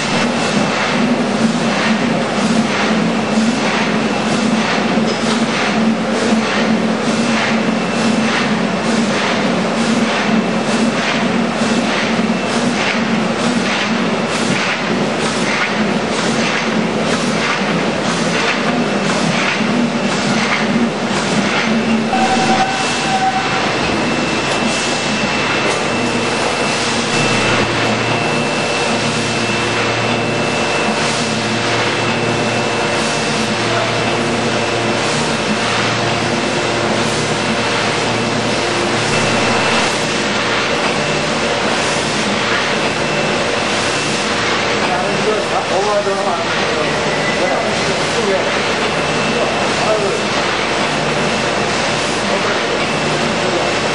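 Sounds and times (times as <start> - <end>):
die cutter machine clattering: 0.0 - 28.0
steady high whine: 17.7 - 45.6.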